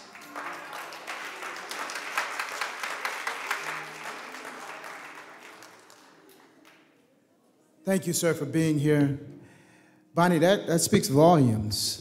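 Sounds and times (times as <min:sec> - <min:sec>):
congregation applauding: 0:00.0 - 0:07.0.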